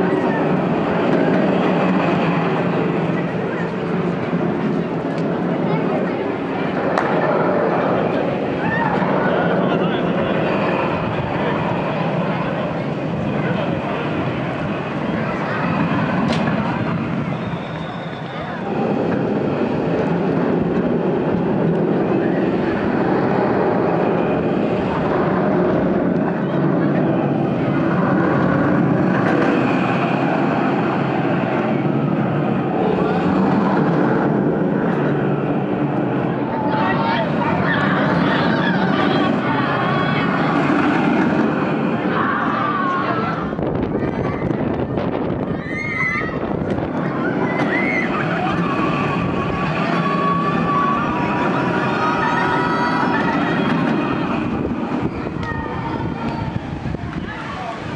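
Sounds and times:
roller coaster rumbling on track: 0.0s - 57.9s
visitors' voices: 0.0s - 57.9s.

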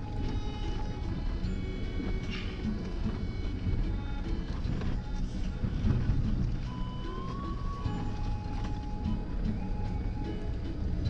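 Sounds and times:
vehicle cabin rumble: 0.0s - 11.0s.

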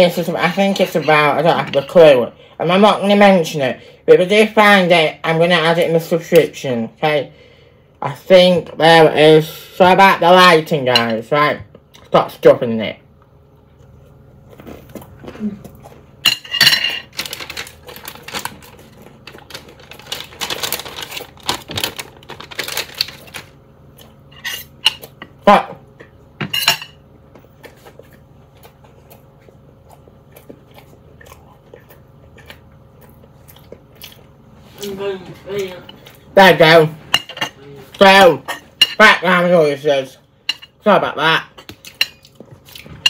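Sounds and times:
cutlery scraping against plate: 16.3s - 17.1s, 24.3s - 25.0s.

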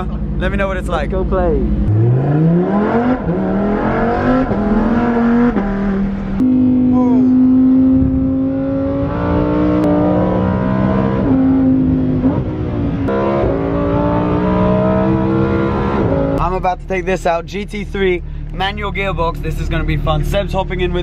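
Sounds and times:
sports car engine accelerating: 0.0s - 21.0s.

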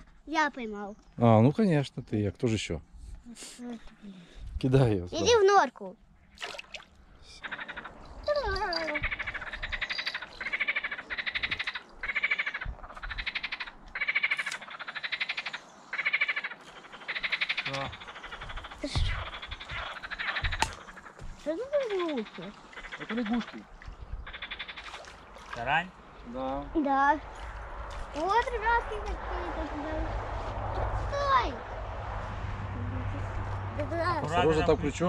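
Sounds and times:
frogs croaking: 5.9s - 30.3s.

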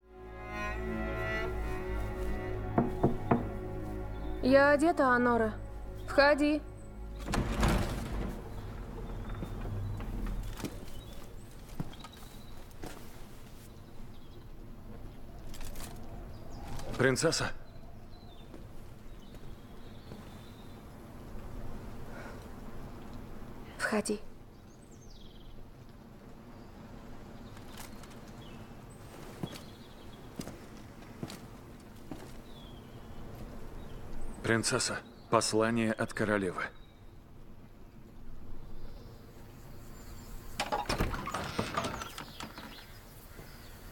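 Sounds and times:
armoured footsteps: 1.4s - 4.0s, 7.2s - 13.7s, 29.0s - 32.7s
soft knocks and rustles: 2.6s - 3.7s.

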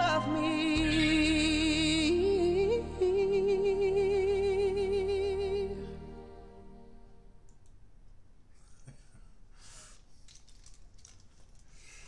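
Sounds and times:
headphones rustling: 10.0s - 12.0s.

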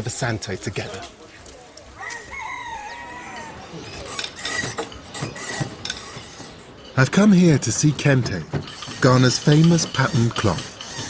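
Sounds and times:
rooster crowing: 2.0s - 3.7s.

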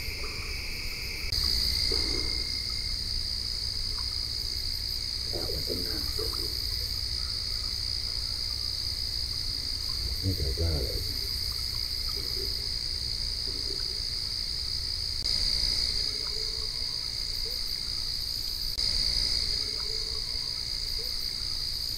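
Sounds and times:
chorus of frogs and insects: 0.0s - 21.9s.

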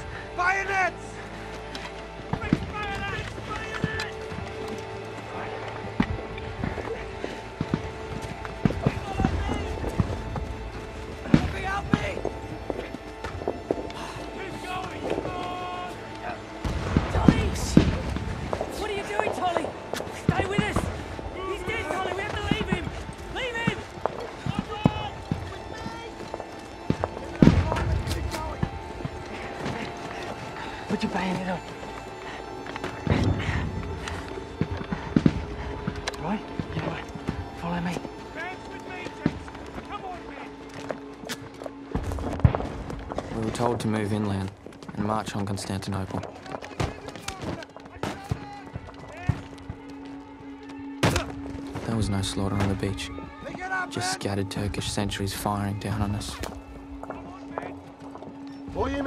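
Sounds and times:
orchestral film score: 0.0s - 59.0s
men shouting: 14.4s - 16.5s.

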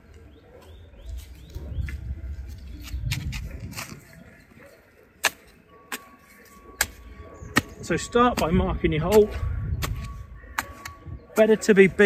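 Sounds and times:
spade chopping into soil: 5.2s - 6.1s, 6.8s - 11.6s.

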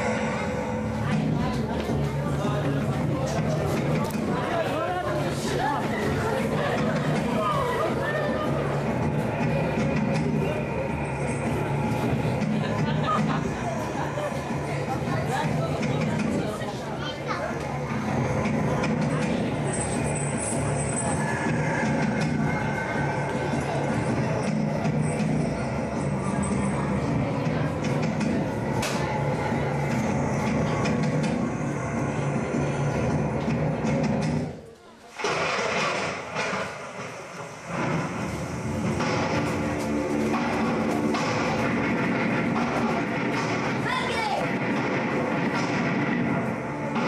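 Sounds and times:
loud rushing rumbling noise: 0.0s - 34.6s, 35.2s - 47.0s
indistinct voices: 0.0s - 47.0s
music playing: 37.7s - 47.0s.

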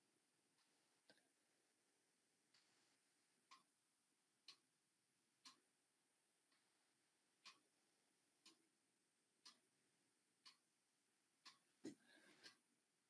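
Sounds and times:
faint regular ticking: 2.5s - 3.8s, 4.4s - 4.8s, 5.4s - 5.7s, 6.4s - 8.8s, 9.4s - 10.8s, 11.4s - 12.6s.

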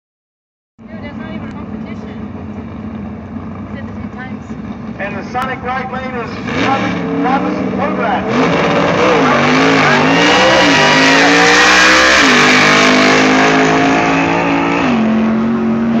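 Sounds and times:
race car accelerating past: 6.3s - 16.0s.

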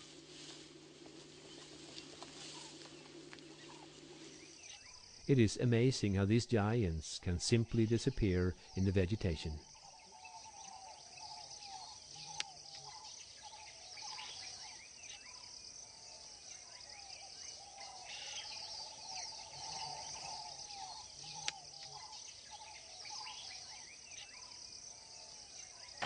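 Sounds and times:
high-pitched insect chorus: 0.0s - 26.0s.

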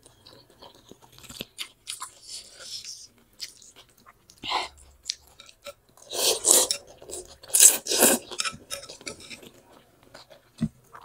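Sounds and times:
person chewing noodles: 0.0s - 11.0s.

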